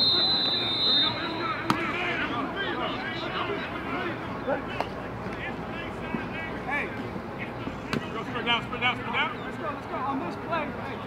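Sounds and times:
distant shouting voices: 0.0s - 9.9s
steady background noise: 0.0s - 11.0s.

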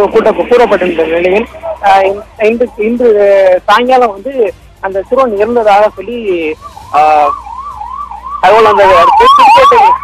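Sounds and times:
people's voices: 0.0s - 7.4s
police siren yelping: 5.8s - 10.0s.

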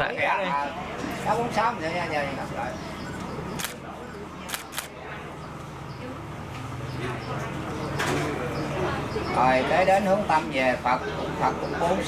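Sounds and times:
low background murmur: 0.0s - 12.0s.

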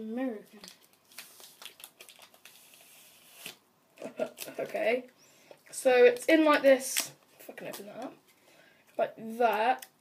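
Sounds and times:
wrapper rustling and crinkling: 0.5s - 4.9s.

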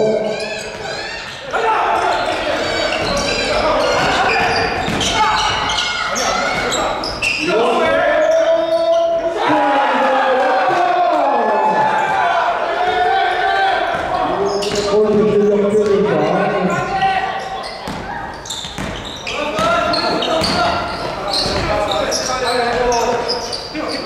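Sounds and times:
players calling and shouting: 0.0s - 24.0s
basketball bouncing on wooden floor: 17.8s - 21.8s.

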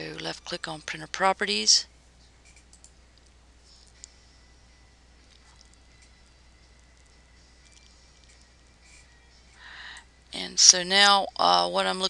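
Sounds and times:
low steady hum: 0.0s - 12.0s
computer mouse clicks: 2.4s - 3.3s.

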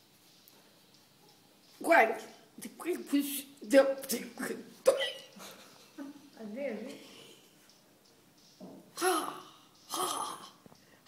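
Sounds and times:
woman laughing: 5.0s - 6.2s.

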